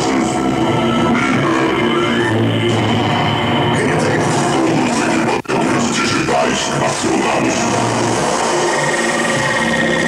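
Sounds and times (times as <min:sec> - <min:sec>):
steady high whine: 0:00.0 - 0:10.0.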